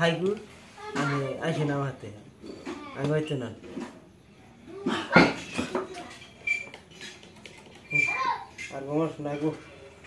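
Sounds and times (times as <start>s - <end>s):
dishes clattering: 4.8s - 9.8s.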